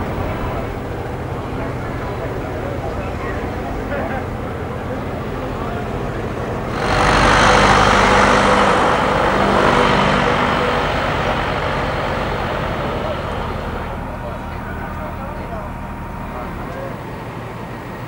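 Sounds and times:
background chatter: 0.0 - 18.0
vehicle engine running: 0.0 - 18.0.

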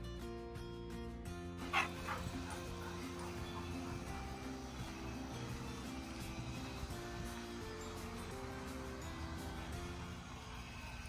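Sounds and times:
background music: 0.0 - 11.0
loud dog bark: 1.6 - 4.0.

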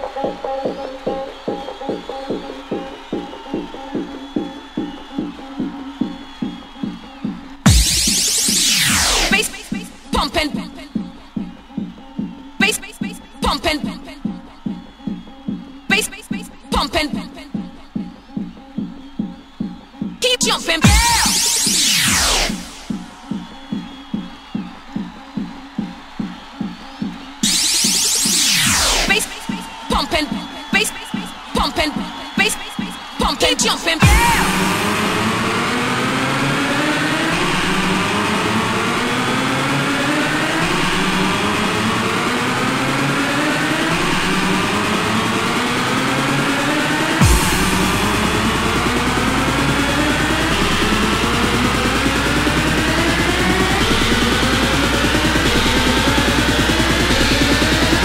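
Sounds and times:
electronic dance music: 0.0 - 58.0
pitched kick drum: 0.2 - 8.5, 9.5 - 21.5, 34.0 - 34.9, 47.2 - 52.2.

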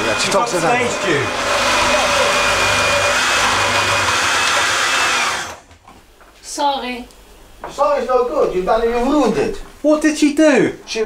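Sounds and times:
electric juicer motor whining: 0.0 - 5.6.

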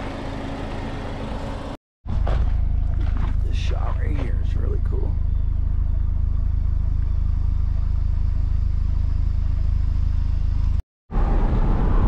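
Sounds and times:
car engine idling: 2.6 - 10.8.

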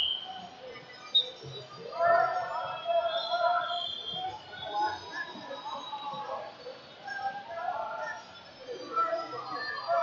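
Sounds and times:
coaches and spectators shouting: 1.8 - 10.0.

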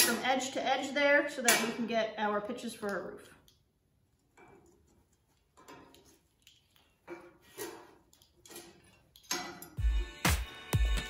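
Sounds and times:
metal tools clicking and scraping: 3.3 - 9.8
music with heavy beat: 9.8 - 11.0.

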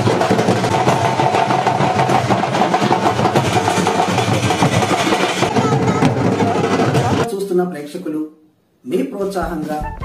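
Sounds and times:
loud fast drumming: 0.0 - 7.3, 9.2 - 10.0
held melodic line: 9.2 - 10.0.

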